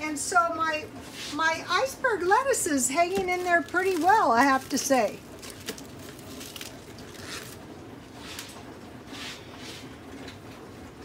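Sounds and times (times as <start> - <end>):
lettuce leaves crinkling: 2.6 - 7.7.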